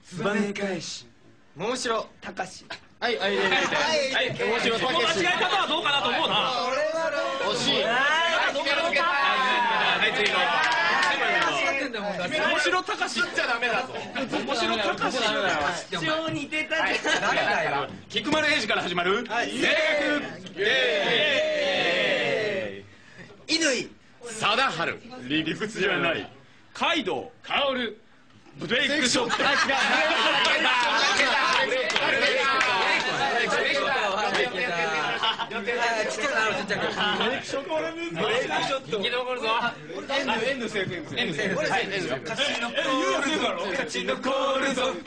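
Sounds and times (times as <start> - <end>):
group of men chattering: 2.7 - 23.5, 28.6 - 45.0.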